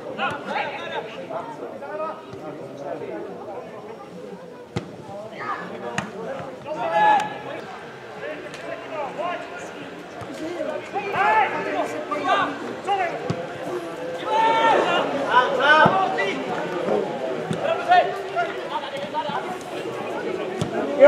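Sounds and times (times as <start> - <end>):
players calling and shouting: 0.0 - 21.0.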